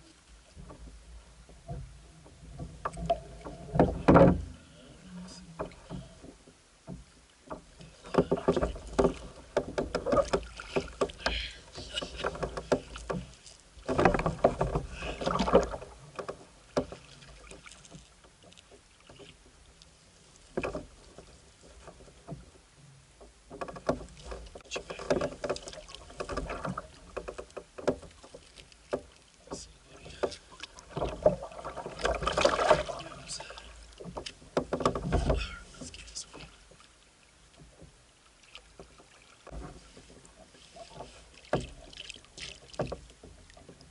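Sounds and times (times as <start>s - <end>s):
knocks and clicks on kayak: 0.6s - 4.6s, 5.5s - 19.5s, 20.5s - 22.6s, 23.2s - 36.9s, 37.6s - 43.9s.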